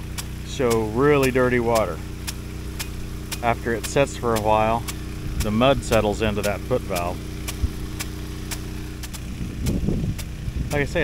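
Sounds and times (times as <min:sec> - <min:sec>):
impact sprinkler clicking: 0:00.0 - 0:10.8
pump engine humming: 0:00.0 - 0:11.0.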